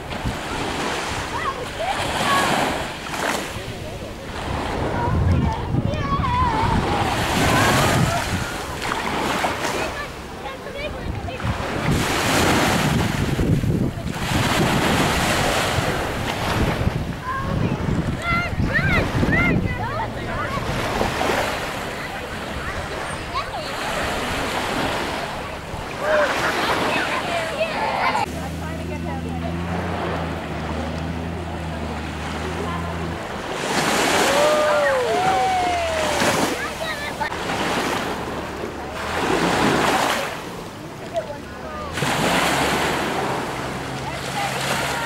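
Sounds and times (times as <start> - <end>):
wind buffeting microphone: 0.0 - 26.2
faint distant voices: 0.0 - 45.0
small waves washing on shore: 0.0 - 45.0.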